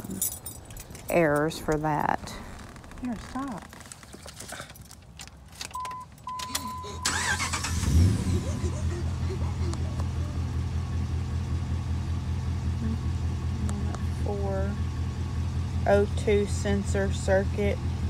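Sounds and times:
pickup engine cranking and idling: 3.8 - 18.0.

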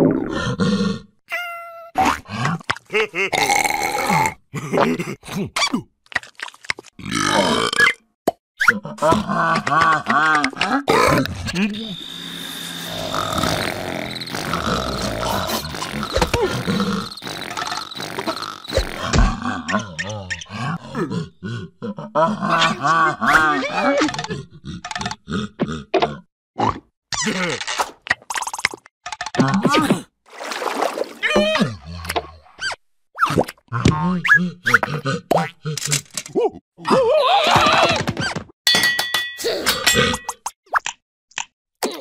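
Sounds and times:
cartoon voices grunting and mumbling: 0.0 - 5.9, 8.6 - 12.0, 12.9 - 27.7, 31.2 - 32.3, 33.7 - 38.1.

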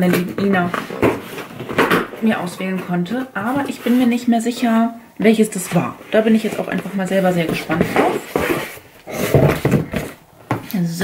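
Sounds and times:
cardboard scraping and rustling: 5.6 - 10.2.

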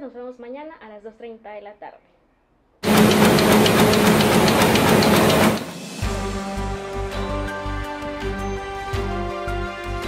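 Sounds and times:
rapid irregular clicking: 2.8 - 5.8
theme music: 2.8 - 10.0.

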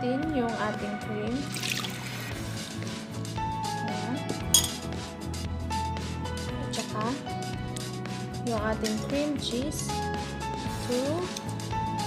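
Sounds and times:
background music: 0.0 - 12.0
metal utensils clinking on glass: 4.5 - 4.9.

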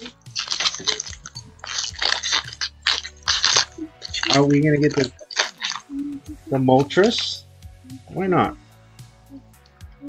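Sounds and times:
cards and wrappers rustling: 0.0 - 5.9.

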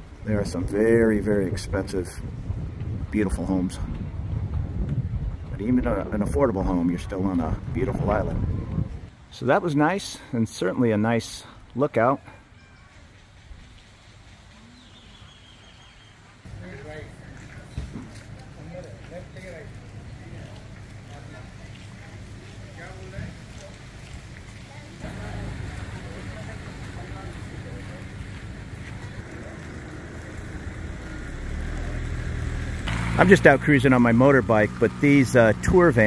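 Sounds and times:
low rumble: 0.3 - 9.1, 23.3 - 36.0.

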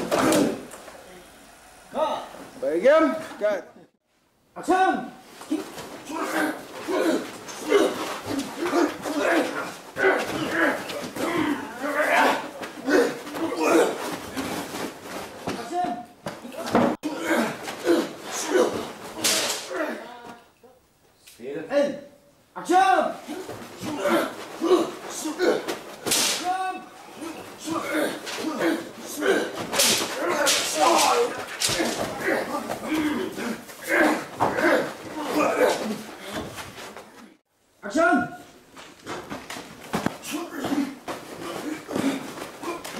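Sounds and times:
fight slaps and hits: 6.2 - 19.9, 23.5 - 26.6, 27.7 - 36.5.

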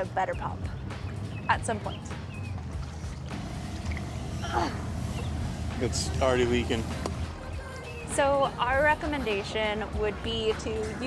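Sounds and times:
hand pump air hissing: 3.3 - 7.2.

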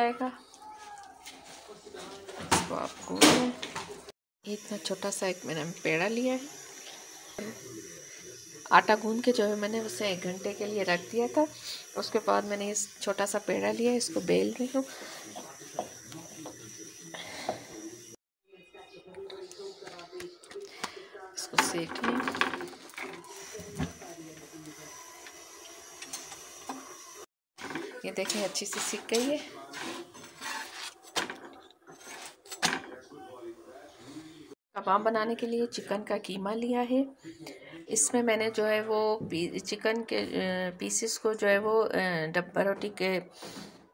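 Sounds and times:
faint background voices: 0.1 - 4.1, 6.1 - 34.6.

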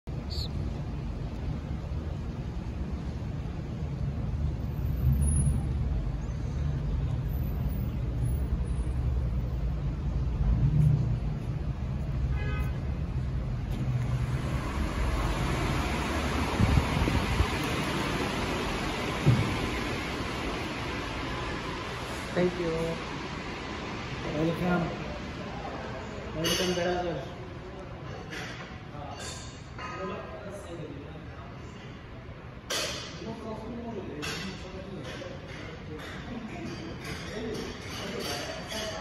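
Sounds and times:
road traffic rumble: 0.0 - 38.8.

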